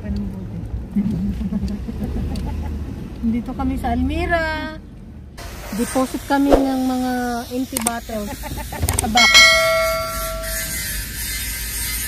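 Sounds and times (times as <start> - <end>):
notification bell ringing: 9.2 - 10.7.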